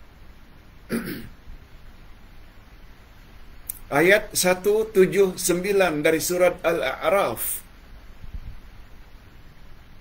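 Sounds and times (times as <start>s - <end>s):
man clearing his throat: 0.9s - 1.4s.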